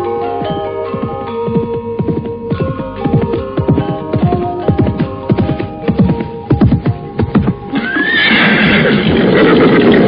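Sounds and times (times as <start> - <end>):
background music: 0.0 - 10.0
horse whinnying: 7.7 - 10.0.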